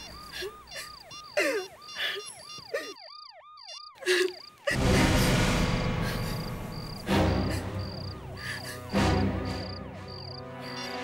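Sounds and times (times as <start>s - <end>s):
phone key beeps and clicks: 0.0s - 4.6s
electronic yelp siren: 0.0s - 5.0s, 6.2s - 11.0s.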